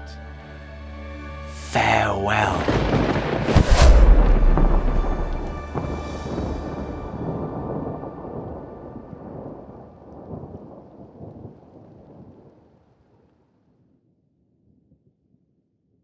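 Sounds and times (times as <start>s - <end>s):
thunder-like rumbling: 2.5s - 12.6s.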